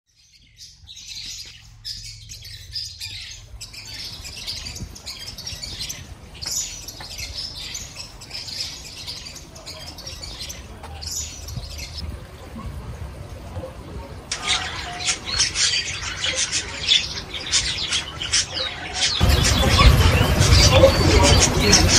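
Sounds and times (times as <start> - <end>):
small birds chirping: 0.1 - 12.1, 12.8 - 21.9.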